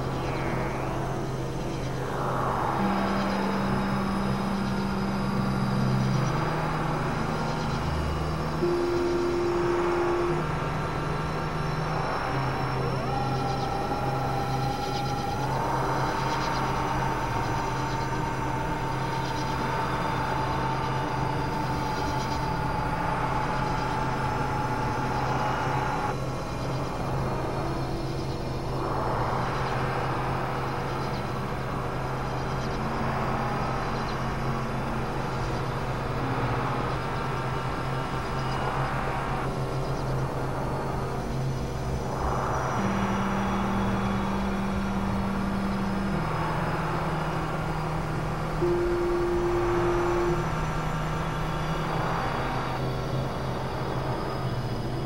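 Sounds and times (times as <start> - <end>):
low synthesizer drone notes: 0.0 - 55.0
noisy grinding synth wash: 28.6 - 55.0.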